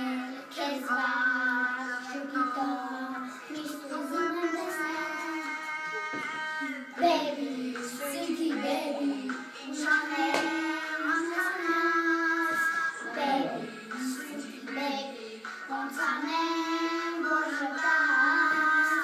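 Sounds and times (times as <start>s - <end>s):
young children singing: 0.0s - 19.0s.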